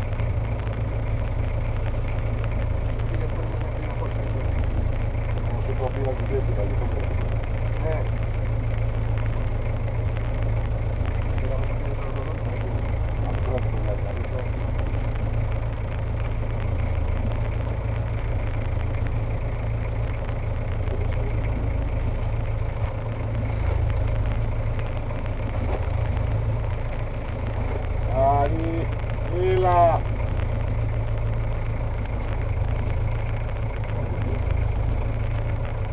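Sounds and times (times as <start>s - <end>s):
boat engine droning: 0.0s - 35.9s.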